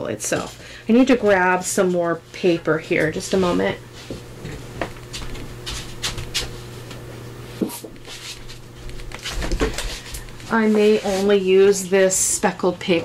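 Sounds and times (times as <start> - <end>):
steady low hum: 0.0 - 13.0
paper rustling and knocks: 7.6 - 10.1.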